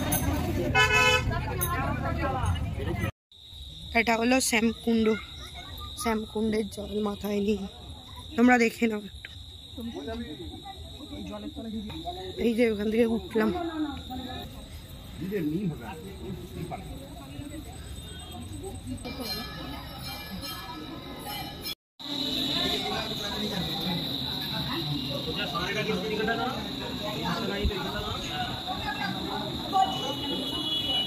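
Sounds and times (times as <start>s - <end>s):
crickets trilling: 3.3s - 31.0s
people talking: 4.0s - 9.1s, 9.8s - 31.0s.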